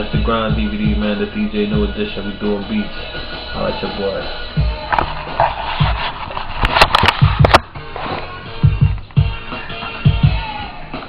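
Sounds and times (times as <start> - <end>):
hip-hop beat through speakers: 0.0 - 11.0
deep kick drums: 0.1 - 1.1, 1.7 - 2.0, 4.6 - 4.9, 7.2 - 7.8, 8.6 - 9.5, 10.1 - 10.5.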